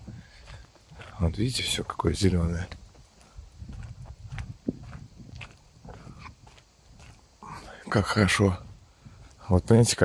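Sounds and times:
footsteps outdoors: 0:00.0 - 0:10.0
wind rumble on microphone: 0:00.0 - 0:10.0
man speaking: 0:01.0 - 0:02.8, 0:07.5 - 0:08.8, 0:09.4 - 0:10.0.

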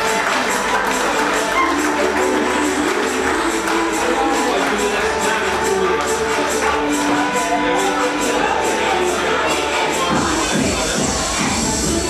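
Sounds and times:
country dance music: 0:00.0 - 0:12.0.

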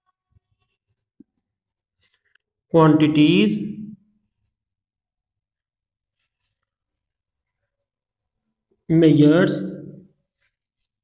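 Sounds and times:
marker writing on whiteboard: 0:00.0 - 0:03.6, 0:04.2 - 0:08.4.

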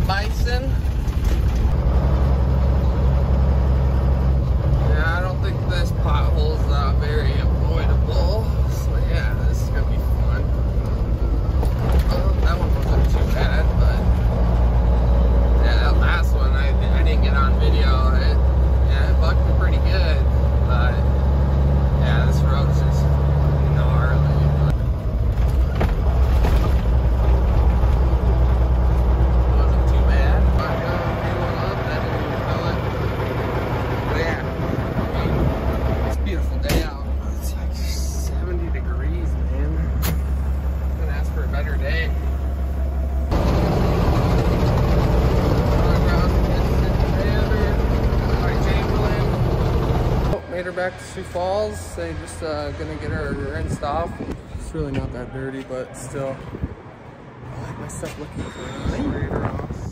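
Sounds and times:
truck diesel engine droning: 0:00.0 - 0:56.4.

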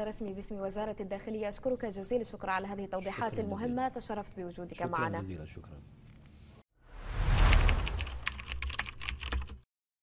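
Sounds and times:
whoosh: 0:06.8 - 0:08.6.

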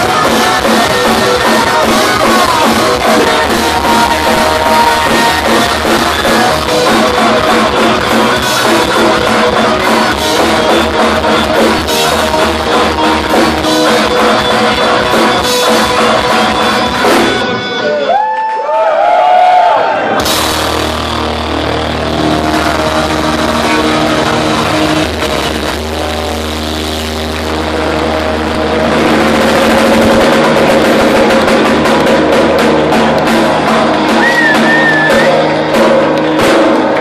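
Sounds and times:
distorted electric guitars: 0:00.0 - 0:18.5, 0:19.8 - 0:37.0
bass guitar: 0:00.0 - 0:18.9, 0:19.5 - 0:37.0
drums: 0:00.0 - 0:37.0.

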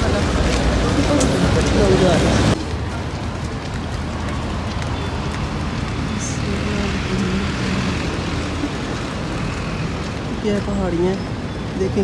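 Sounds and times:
road traffic low rumble: 0:00.0 - 0:12.0.

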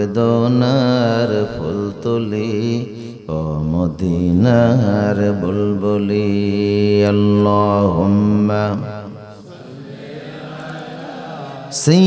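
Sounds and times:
man chanting into a microphone: 0:00.0 - 0:09.6, 0:11.5 - 0:12.0.

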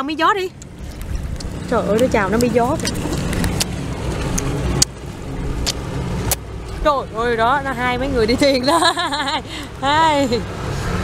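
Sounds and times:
boat engine rumble: 0:00.0 - 0:11.0
wind on microphone: 0:00.7 - 0:08.3.

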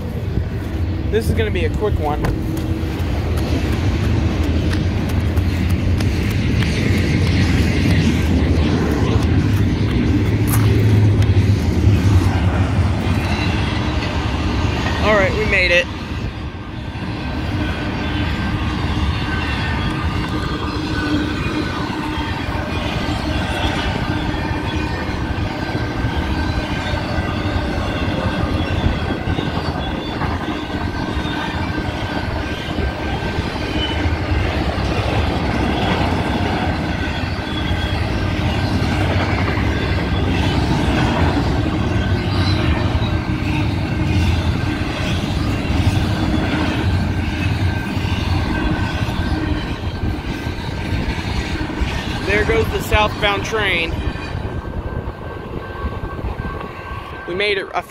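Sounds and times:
train wheels clattering on rails: 0:00.0 - 0:57.2
high-pitched squealing: 0:17.5 - 0:57.9.

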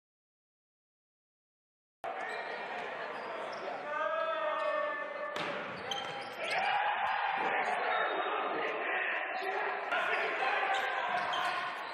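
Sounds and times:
players' voices: 0:02.0 - 0:11.9.

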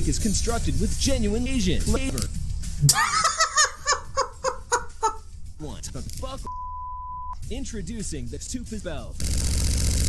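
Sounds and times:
man laughing hard: 0:02.9 - 0:05.2.

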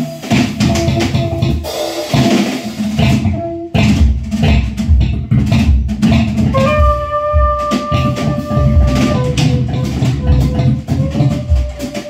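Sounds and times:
drum kit playing: 0:00.0 - 0:12.0
electric bass plucked notes: 0:00.6 - 0:01.6, 0:03.0 - 0:11.8.

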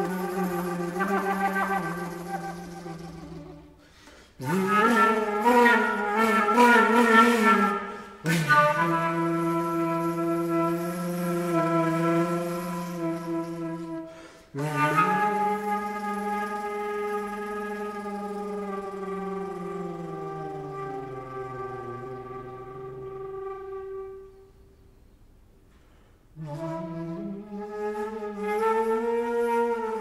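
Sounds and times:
solo flute low sustained notes: 0:00.0 - 0:03.8, 0:04.4 - 0:25.1, 0:26.4 - 0:30.0.

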